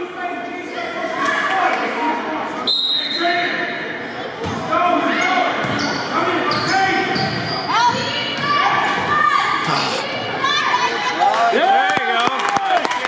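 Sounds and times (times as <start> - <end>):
sneakers squeaking: 5.6 - 10.3
echoing voices: 9.1 - 11.2.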